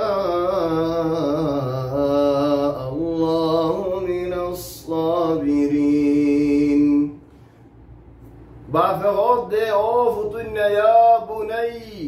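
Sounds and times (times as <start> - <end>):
man chanting melodically: 0.0 - 7.2, 8.7 - 12.0.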